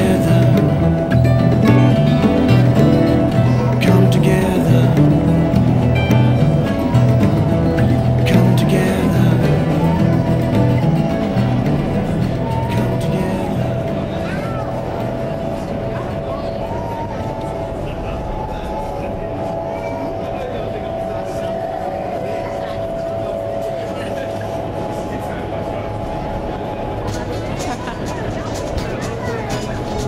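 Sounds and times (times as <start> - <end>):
constant hum: 0.0 - 30.0
indistinct voices: 0.0 - 30.0
music: 0.0 - 30.0.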